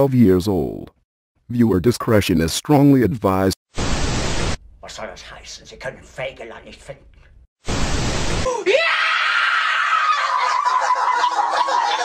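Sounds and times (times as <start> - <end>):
tv static hiss: 3.8 - 4.6, 7.7 - 8.4
boy screaming: 8.5 - 11.1.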